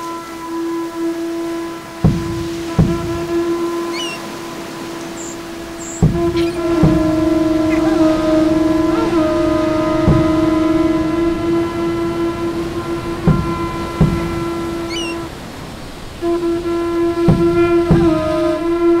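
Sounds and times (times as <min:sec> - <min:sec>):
low wind instrument note: 0:00.0 - 0:19.0
soft thumps: 0:02.0 - 0:04.2, 0:05.0 - 0:09.2, 0:10.0 - 0:15.3, 0:17.2 - 0:18.4.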